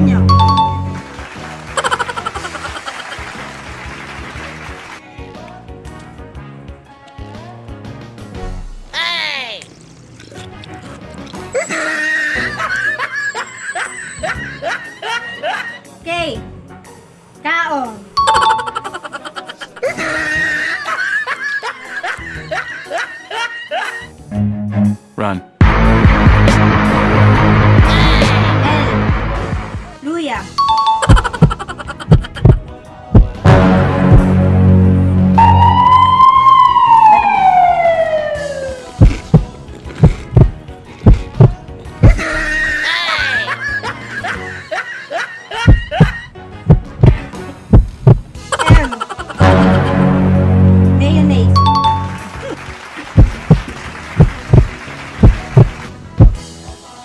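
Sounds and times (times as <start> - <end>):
snickering laughter: 1.8 - 3.4, 11.6 - 15.8, 18.7 - 24.1, 31.0 - 32.6, 42.1 - 46.3, 48.4 - 49.4
heartbeat thumps: 31.1 - 33.4, 34.0 - 34.4, 39.0 - 42.2, 45.7 - 48.9, 53.2 - 56.4
swirling music: 33.4 - 39.5.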